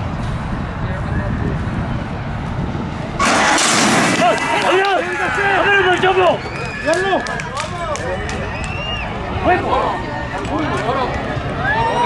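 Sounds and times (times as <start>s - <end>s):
crowd shouting: 4.0s - 12.0s
spectators murmuring: 4.0s - 12.0s.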